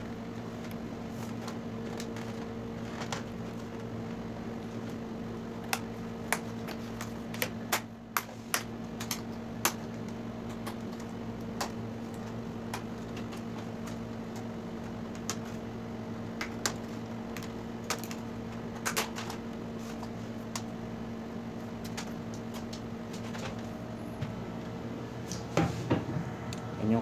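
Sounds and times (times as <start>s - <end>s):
low electrical hum: 0.0s - 27.0s.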